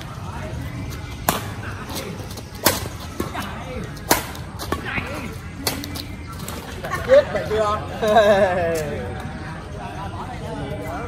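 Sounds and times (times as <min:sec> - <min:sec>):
racket hitting shuttlecock: 0:01.2 - 0:01.5, 0:02.6 - 0:04.9, 0:05.6 - 0:06.0.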